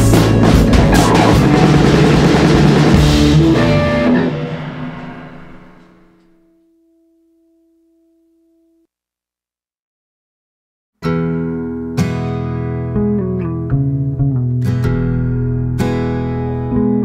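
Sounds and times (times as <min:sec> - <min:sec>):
rock band playing: 0:00.0 - 0:06.1
guitar chord ringing out: 0:00.9 - 0:08.8.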